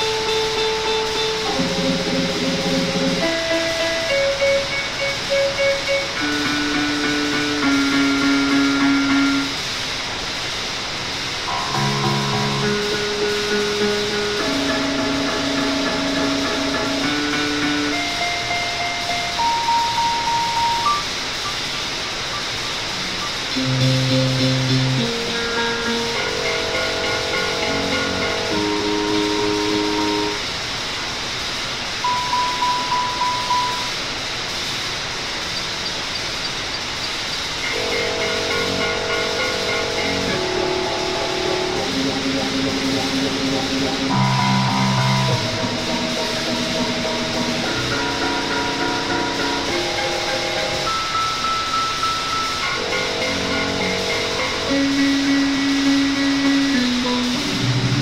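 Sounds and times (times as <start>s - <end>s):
experimental electronic music: 0.0s - 9.6s, 11.5s - 30.4s, 37.4s - 58.0s
steady hiss: 0.0s - 58.0s.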